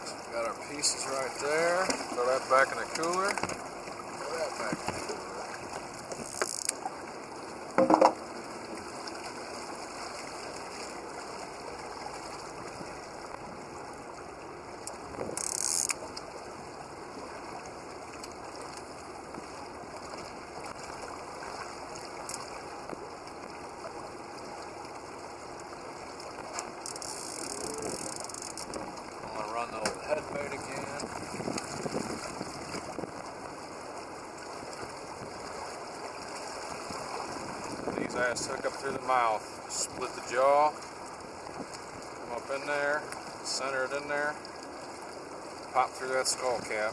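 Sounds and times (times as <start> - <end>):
fishing reel clicker ratcheting: 6.2 - 6.8, 15.4 - 16.0, 26.8 - 28.7.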